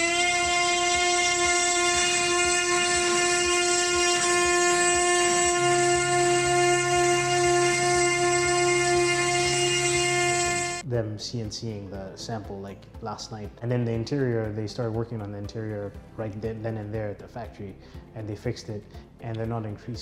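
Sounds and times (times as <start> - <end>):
low hum: 0.0 - 10.8
cnc router spindle whining: 0.0 - 10.9.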